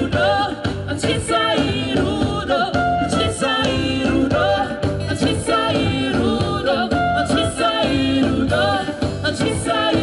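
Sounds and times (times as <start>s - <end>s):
group singing with accompaniment: 0.0s - 10.0s.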